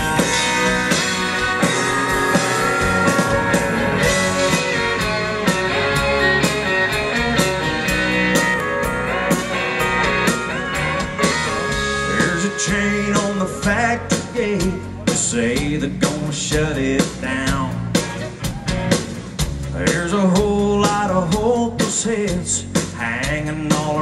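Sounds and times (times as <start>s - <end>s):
distorted electric guitar: 0.0s - 21.6s
drum kit: 0.0s - 24.0s.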